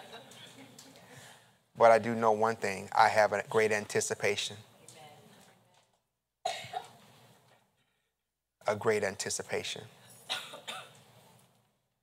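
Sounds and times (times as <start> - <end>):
person coughing: 6.5 - 7.0, 10.3 - 11.0.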